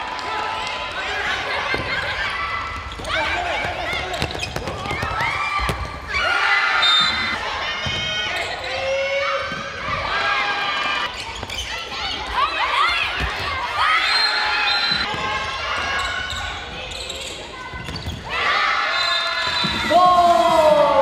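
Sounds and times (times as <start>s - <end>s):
shoes squeaking on hardwood floor: 11.1s - 12.4s.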